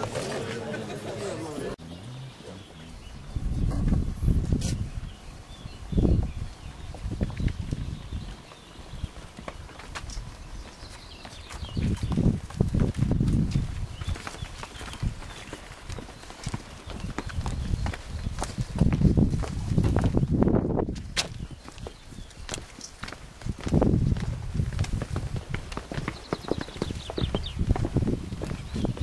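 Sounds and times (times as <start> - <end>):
wind buffeting microphone: 2.5 - 29.0
footsteps on stone: 6.2 - 29.0.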